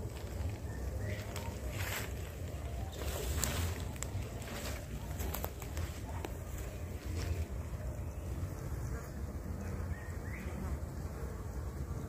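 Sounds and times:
rustling hiss: 0.0 - 12.0.

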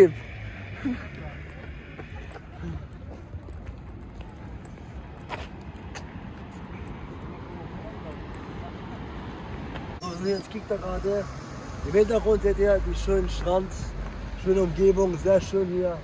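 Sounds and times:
faint voices: 0.0 - 10.8.

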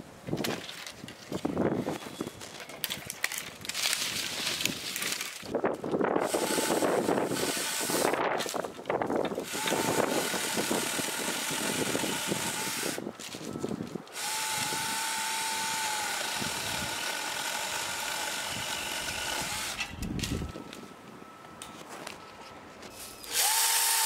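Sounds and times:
electric chainsaw cutting branch: 6.2 - 8.6, 9.3 - 13.0, 14.1 - 20.2, 23.2 - 24.0.

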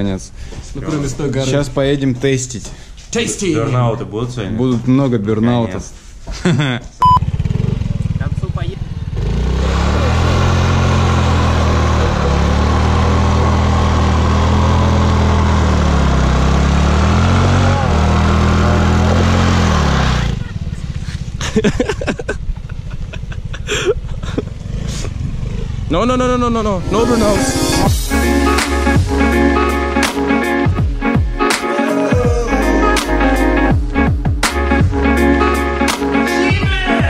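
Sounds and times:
scooter engine revving high: 7.0 - 21.4.

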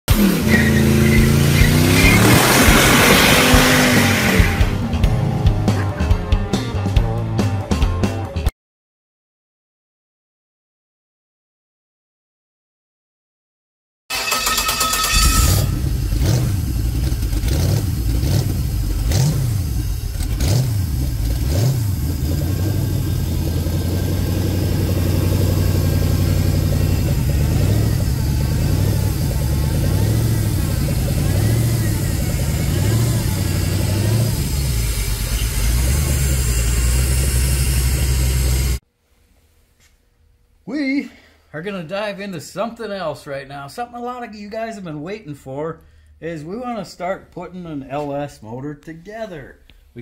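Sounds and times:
tyre squealing: 0.1 - 4.8, 14.1 - 16.4
car engine revving: 0.1 - 6.2, 14.1 - 38.8
rock music with guitar: 0.1 - 8.5.

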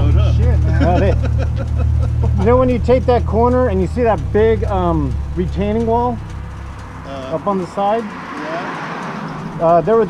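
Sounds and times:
men talking: 0.0 - 10.0
motorcycle engines idling: 0.0 - 10.0.

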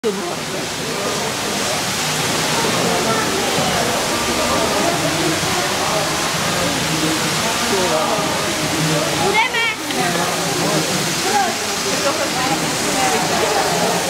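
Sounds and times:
murmur of voices: 0.0 - 14.0
water shower spraying: 0.0 - 14.0.

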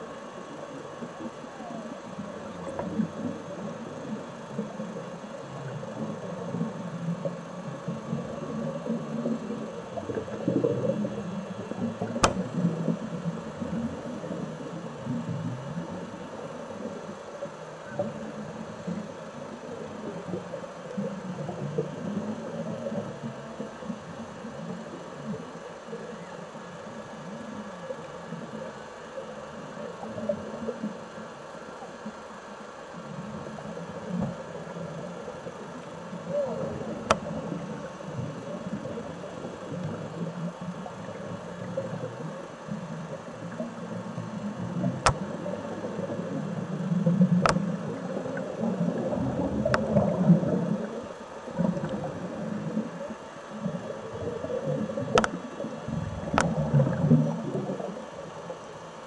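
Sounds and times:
muffled underwater rumbling: 0.0 - 59.0
sharp click: 12.2 - 12.4.

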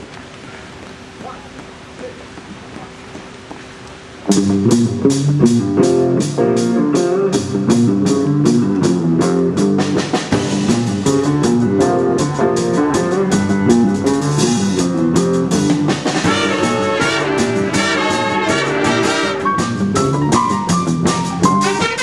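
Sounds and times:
drum kit beat: 1.2 - 22.0
guitar: 4.2 - 22.0
jazz big band playing: 4.3 - 22.0
horns playing: 11.0 - 15.1, 16.2 - 20.2, 21.4 - 22.0.

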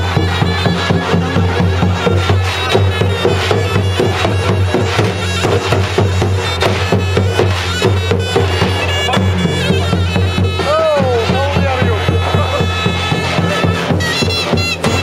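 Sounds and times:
drum strokes: 0.0 - 15.0
zurna playing nasal folk melody: 0.0 - 15.0.

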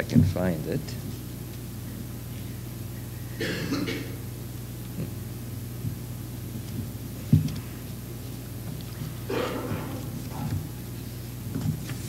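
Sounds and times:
person coughing: 3.4 - 4.2, 9.3 - 10.1.

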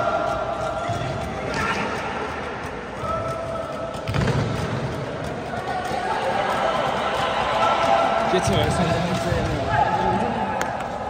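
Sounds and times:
spectators talking and calling: 5.0 - 11.0.

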